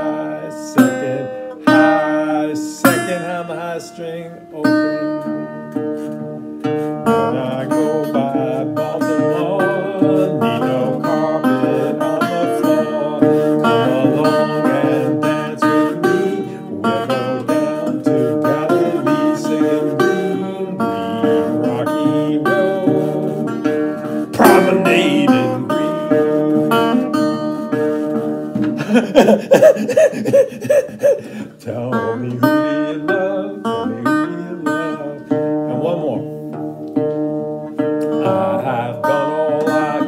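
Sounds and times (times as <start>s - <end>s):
resonator guitar picked melody: 0.0s - 40.0s.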